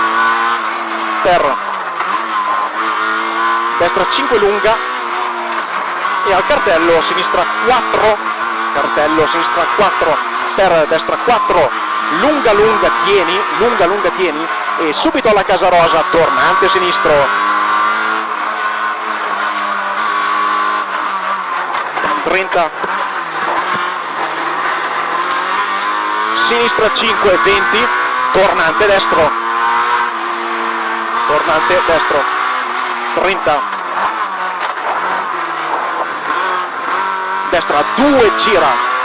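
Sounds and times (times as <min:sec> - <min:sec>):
car engine at high revs: 0:00.0 - 0:39.0
road and tyre noise: 0:00.0 - 0:39.0.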